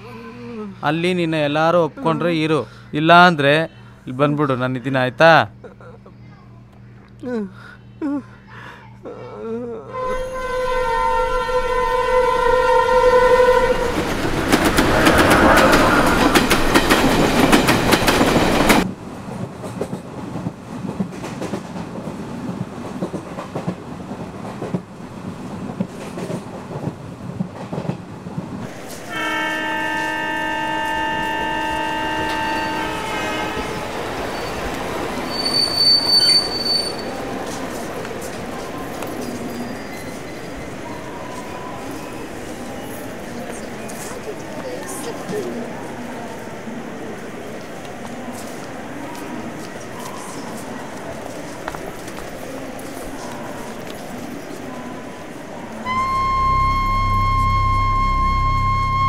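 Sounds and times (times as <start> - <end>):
train horn: 9.9 - 14.1, 28.7 - 34.1, 55.8 - 59.0
passing train rushing and clattering: 10.1 - 56.0
rail clatter: 13.1 - 46.3
short high-pitched tone: 55.9 - 59.0.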